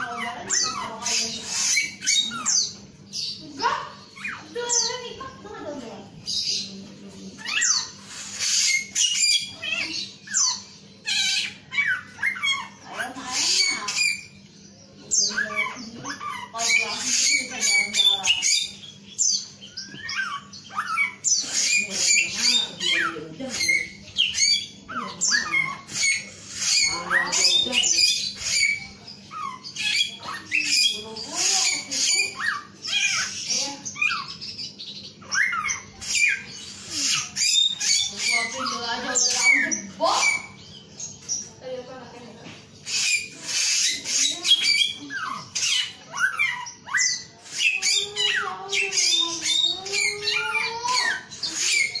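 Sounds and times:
bird chirping and whistling: 0.0 - 5.4, 7.4 - 41.6, 42.8 - 52.0.

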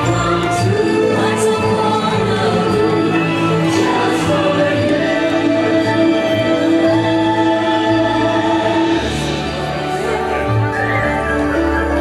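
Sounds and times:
choir singing held chord: 0.0 - 10.0
parade music: 0.0 - 12.0.

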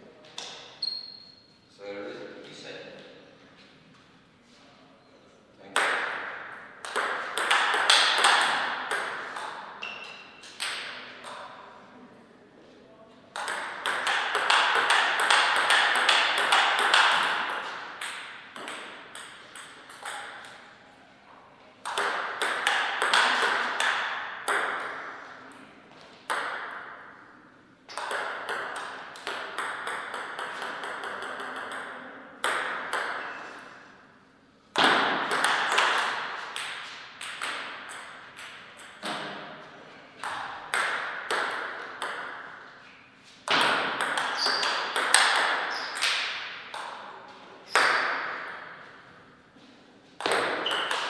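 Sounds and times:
table tennis ball clicking: 6.8 - 9.6, 21.8 - 24.9, 27.9 - 33.2, 43.6 - 47.0.

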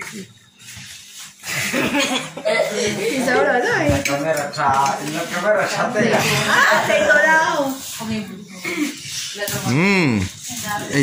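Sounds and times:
people talking: 2.5 - 11.0.

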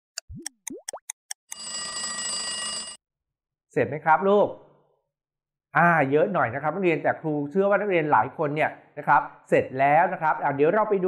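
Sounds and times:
countdown clock ticking: 0.1 - 1.7.

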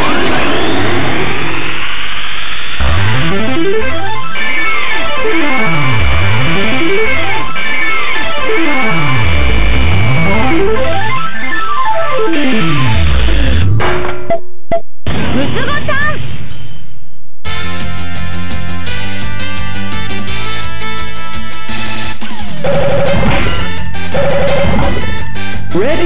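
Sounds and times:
synthesized tone runs: 2.8 - 14.4.

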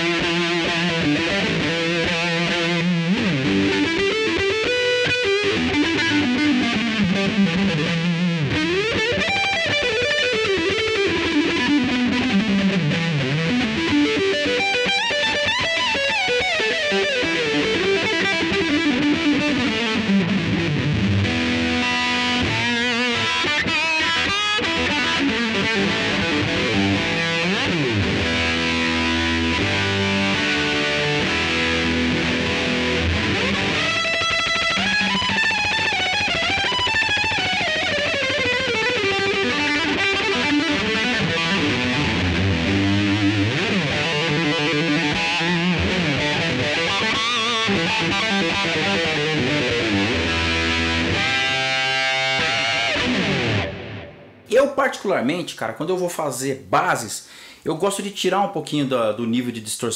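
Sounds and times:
distorted electric guitar: 0.0 - 55.4.

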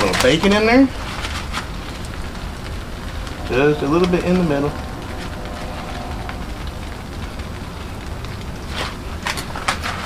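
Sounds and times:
food sizzling: 0.0 - 10.0.

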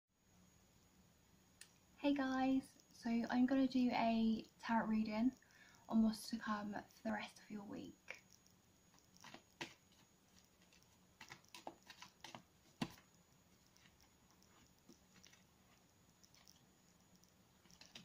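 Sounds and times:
cards being shuffled: 9.2 - 13.1.

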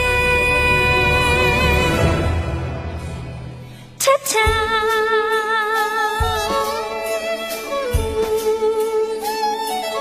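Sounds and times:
live band music: 0.0 - 10.0.

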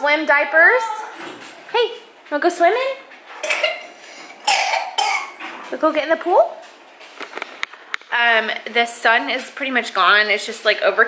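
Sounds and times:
person coughing: 3.4 - 5.4.

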